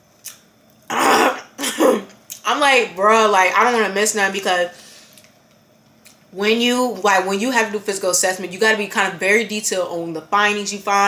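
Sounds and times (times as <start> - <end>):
woman clearing her throat: 0.9 - 2.1.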